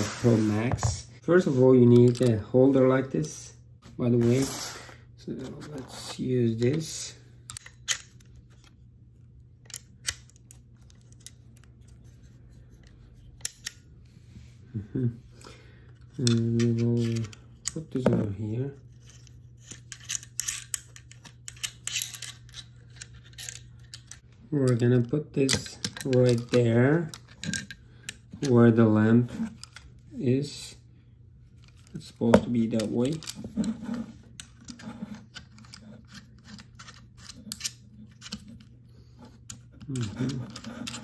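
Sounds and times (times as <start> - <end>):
faint steady hum: 0.0 - 41.0
plastic and metal parts clicking: 19.0 - 28.6, 31.6 - 38.7, 39.4 - 41.0.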